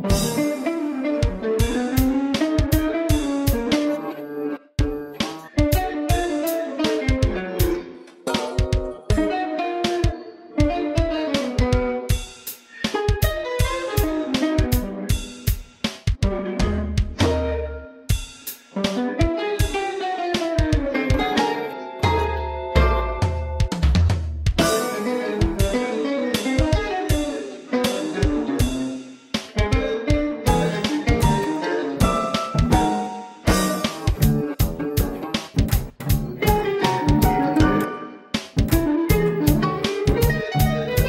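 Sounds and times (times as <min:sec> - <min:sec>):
drum groove: 0:00.0 - 0:04.1, 0:04.8 - 0:22.2, 0:22.9 - 0:41.0
electric guitar bending melody: 0:00.0 - 0:15.5, 0:16.2 - 0:18.0, 0:18.8 - 0:23.8, 0:24.6 - 0:41.0.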